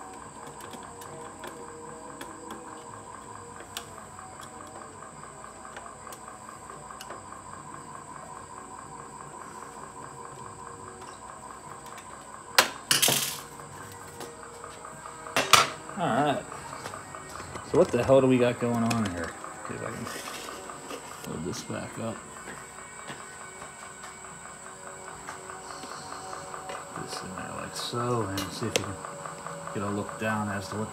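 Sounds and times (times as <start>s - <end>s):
faint high whine: 0.0s - 30.9s
metal lid clattering: 15.4s - 15.8s.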